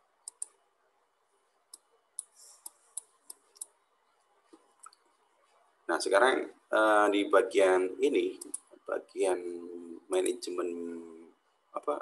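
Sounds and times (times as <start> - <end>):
computer mouse clicks: 0.3 - 0.5.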